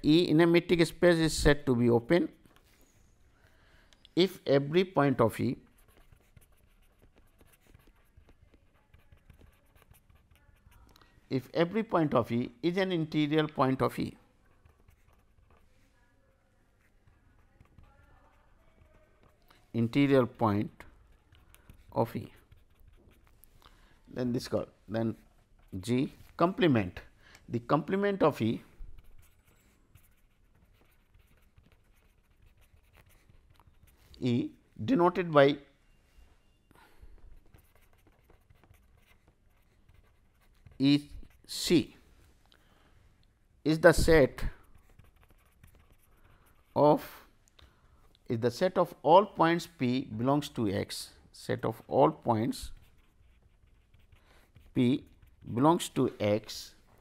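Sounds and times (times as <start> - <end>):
man speaking: 0.0 - 2.4, 4.2 - 5.7, 11.3 - 14.2, 19.7 - 20.9, 21.9 - 22.4, 24.1 - 28.7, 34.1 - 35.7, 40.7 - 42.0, 43.6 - 44.6, 46.7 - 47.3, 48.3 - 52.8, 54.7 - 56.8
pen scratching on paper: 4.8 - 23.4, 28.1 - 34.2, 37.3 - 41.7, 43.9 - 47.2, 51.6 - 56.6.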